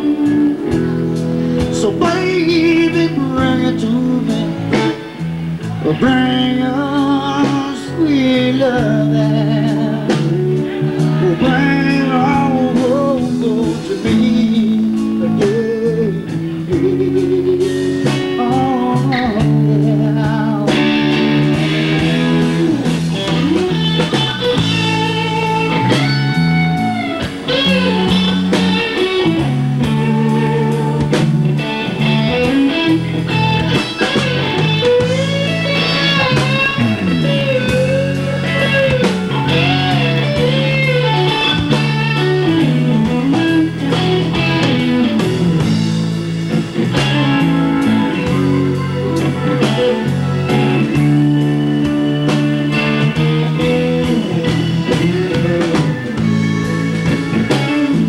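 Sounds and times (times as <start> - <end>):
bass line: 0.0 - 58.0
drum kit: 0.0 - 58.0
electric guitar lead: 0.0 - 58.0.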